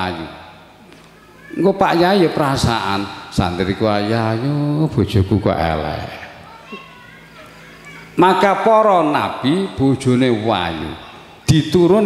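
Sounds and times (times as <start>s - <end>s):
low steady hum: 0.0s - 12.0s
children chattering: 1.0s - 2.4s, 6.0s - 9.1s, 10.2s - 11.5s.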